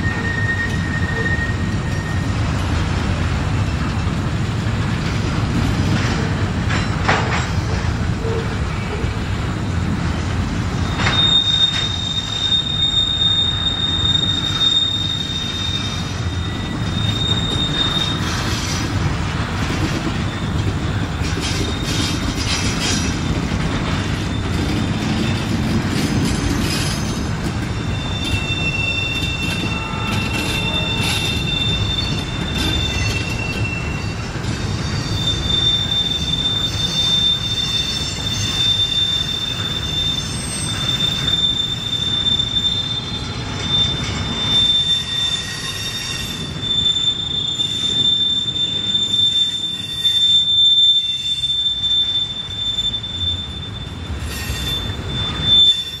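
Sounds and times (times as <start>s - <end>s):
train wheels rumbling on track: 0.0s - 56.0s
wheel flanges squealing on rail: 0.0s - 56.0s.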